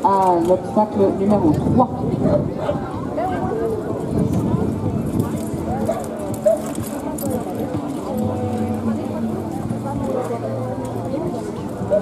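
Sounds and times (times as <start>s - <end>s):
people's voices: 0.0s - 12.0s.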